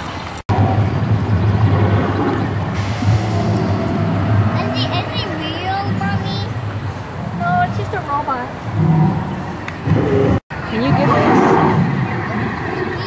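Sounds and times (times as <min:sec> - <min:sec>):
steady outdoor hum: 0:00.0 - 0:13.0
indistinct voices: 0:02.1 - 0:13.0.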